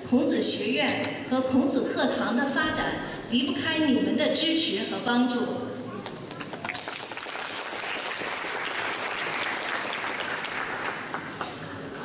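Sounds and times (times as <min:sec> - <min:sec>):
audience applauding: 0:06.4 - 0:11.6.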